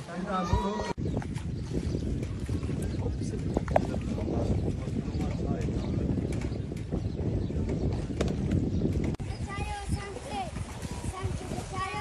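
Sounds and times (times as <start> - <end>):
boat rumbling with knocks: 0.0 - 12.0.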